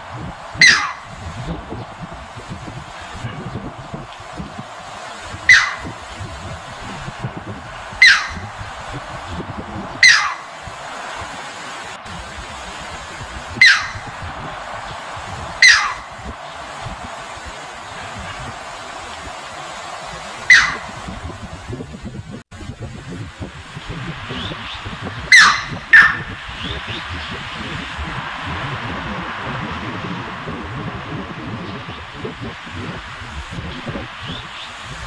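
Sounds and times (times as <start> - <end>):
rocky stream rushing: 0.0 - 21.8
heron calls sliding down: 0.6 - 1.1, 5.0 - 6.1, 7.9 - 8.5, 10.0 - 11.9, 13.6 - 14.1, 15.6 - 16.1, 17.6 - 21.0.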